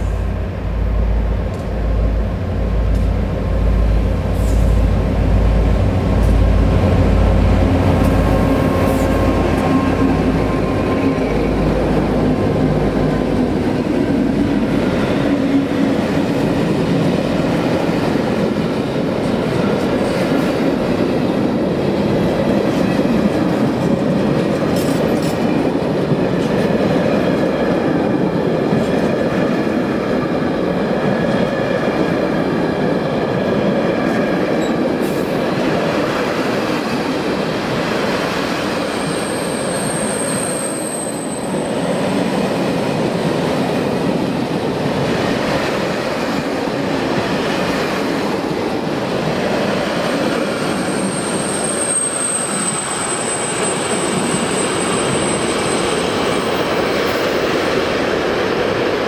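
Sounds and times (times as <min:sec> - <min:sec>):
train wheels rumbling on rail: 0:00.0 - 0:59.0
high wheel squeal: 0:38.9 - 0:41.8, 0:50.6 - 0:56.7.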